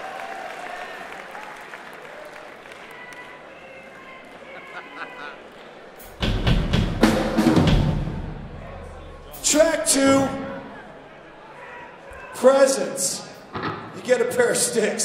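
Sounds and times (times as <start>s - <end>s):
murmur of audience: 0.0s - 15.0s
drum kit hits: 6.2s - 10.4s.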